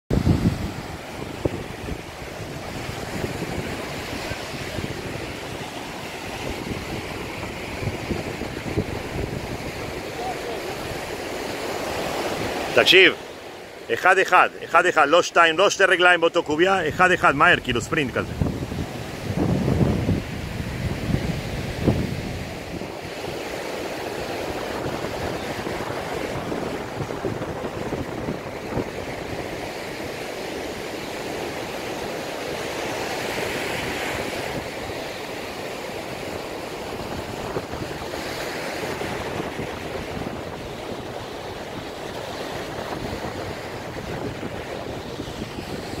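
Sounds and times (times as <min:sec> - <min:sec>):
wind buffeting microphone: 0:00.1 - 0:12.8, 0:16.7 - 0:46.0
sea surf washing onto beach: 0:00.1 - 0:46.0.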